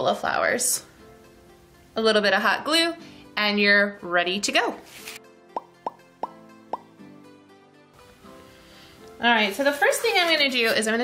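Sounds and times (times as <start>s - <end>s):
soft background music: 0.0s - 11.0s
cartoon pop sound effects: 5.5s - 7.0s.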